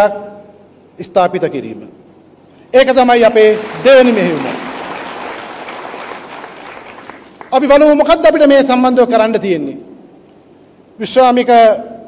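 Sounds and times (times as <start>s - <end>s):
audience applause: 3.4s - 7.6s.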